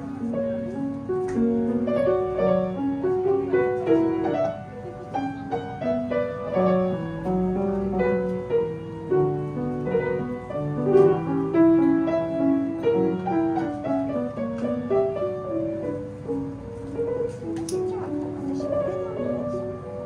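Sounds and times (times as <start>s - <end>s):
grand piano classical piece: 0.0s - 20.0s.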